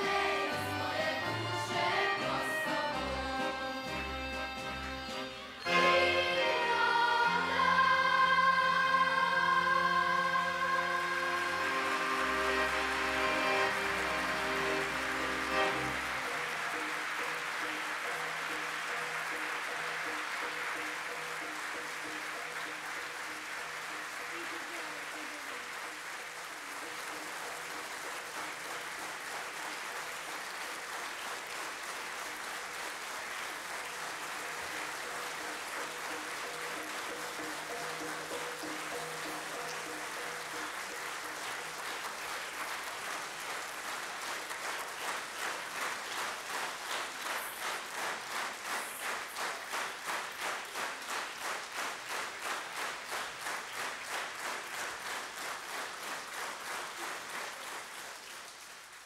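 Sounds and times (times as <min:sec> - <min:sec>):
audience applauding: 0:00.0 - 0:59.0
rhythmic clapping in unison: 0:00.0 - 0:59.0.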